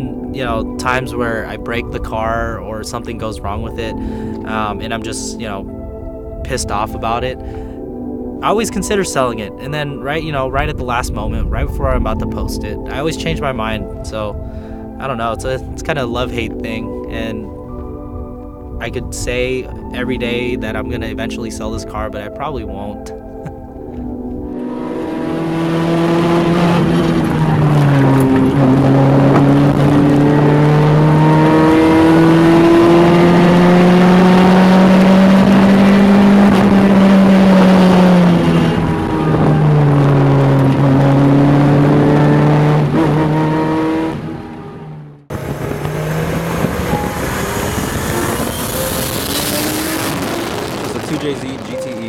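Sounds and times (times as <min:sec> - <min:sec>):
quieter car sound: 0:22.0 - 0:52.0
car engine at high revs: 0:24.5 - 0:52.0.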